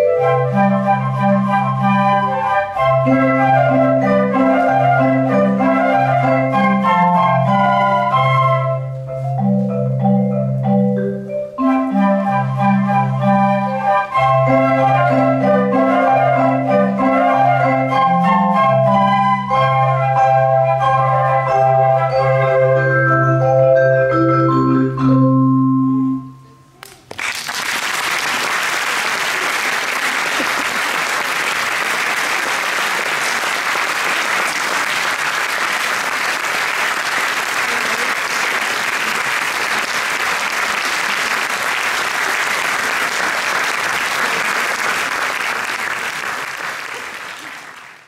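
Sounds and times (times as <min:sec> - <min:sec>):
audience applauding: 0:26.8 - 0:48.0.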